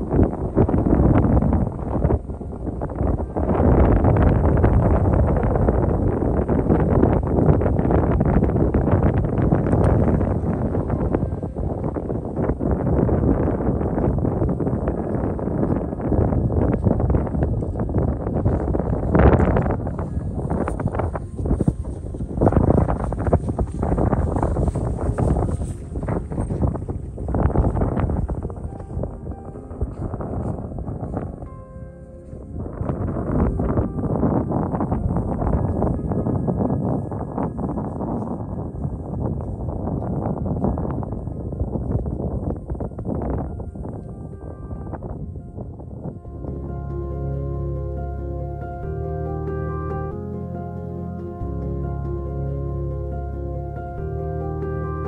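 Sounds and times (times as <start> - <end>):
soft ambient background music: 0.0 - 55.0
wind buffeting microphone: 0.0 - 55.0.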